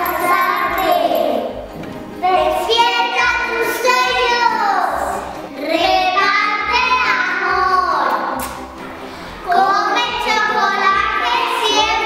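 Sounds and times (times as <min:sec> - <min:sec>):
children singing with instruments: 0:00.0 - 0:08.6, 0:09.2 - 0:12.0.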